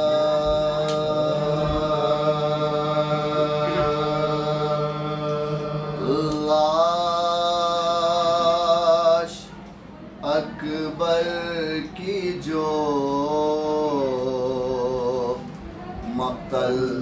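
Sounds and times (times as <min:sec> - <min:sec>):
men singing a sustained note: 0:00.0 - 0:09.6, 0:10.2 - 0:17.0.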